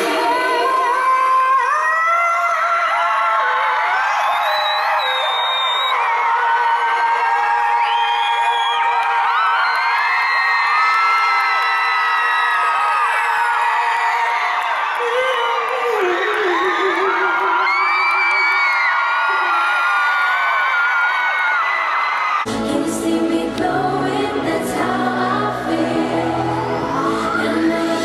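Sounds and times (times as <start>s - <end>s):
woman singing into microphone: 0.0s - 3.4s, 15.0s - 18.4s, 22.5s - 28.0s
crowd singing and screaming: 0.0s - 28.0s.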